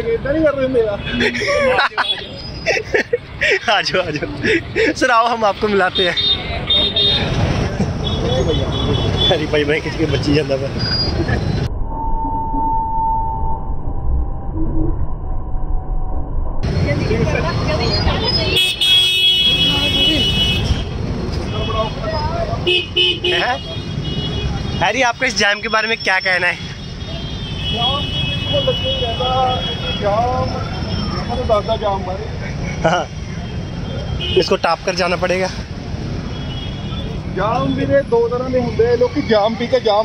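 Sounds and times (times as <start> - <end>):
people talking: 0.0 - 6.2, 7.6 - 10.8, 16.8 - 18.6, 37.4 - 40.0
low traffic noise: 0.0 - 11.7, 16.6 - 40.0
vehicle horn honking: 6.1 - 7.4, 18.6 - 20.9, 22.6 - 24.8, 26.8 - 30.2.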